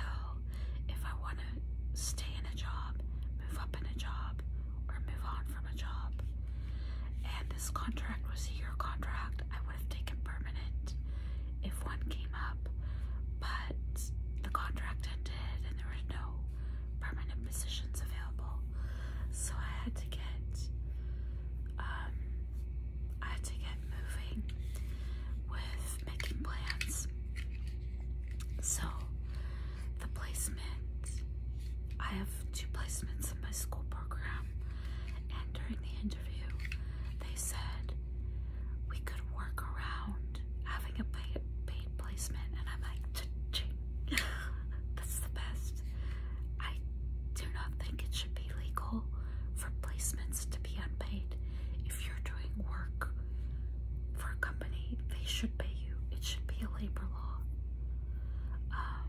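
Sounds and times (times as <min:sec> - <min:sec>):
woman whispering: 0:00.0 - 0:06.4, 0:07.1 - 0:11.0, 0:11.6 - 0:20.7, 0:21.7 - 0:22.3, 0:23.1 - 0:27.1, 0:28.4 - 0:38.0, 0:38.9 - 0:45.9, 0:46.6 - 0:53.2, 0:54.1 - 0:57.6, 0:58.6 - 0:59.0
steady low hum: 0:00.0 - 0:59.0.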